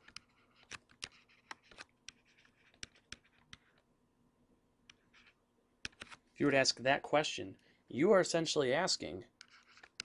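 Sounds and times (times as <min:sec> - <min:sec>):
stylus scratching on tablet: 0:00.0 - 0:03.8, 0:04.9 - 0:06.2, 0:09.4 - 0:10.0.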